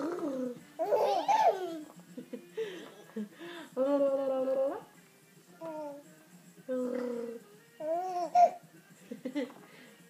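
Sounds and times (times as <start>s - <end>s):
baby cooing: 0.0s - 1.8s, 6.7s - 8.6s.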